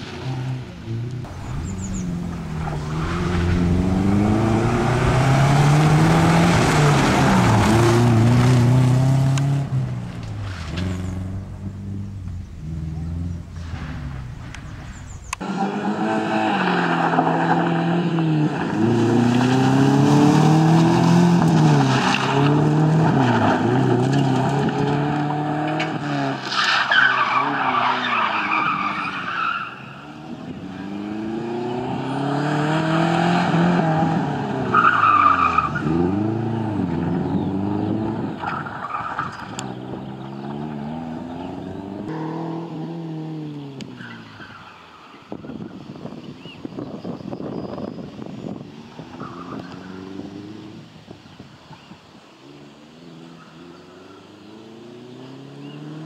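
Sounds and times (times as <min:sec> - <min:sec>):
rally car engine revving: 0:00.0 - 0:44.6
tyres skidding on loose dirt: 0:00.0 - 0:50.7.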